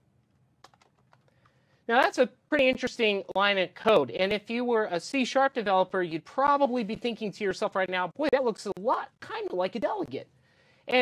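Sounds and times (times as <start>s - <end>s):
typing on computer keyboard: 0.6s - 1.6s.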